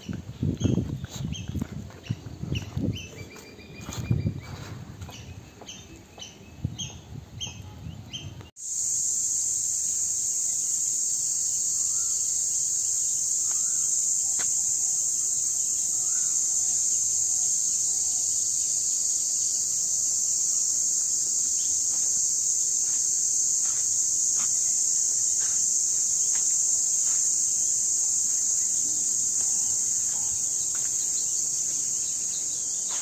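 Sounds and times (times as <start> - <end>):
insects droning: 8.4 - 33.0
faint bird chirps: 13.4 - 14.1.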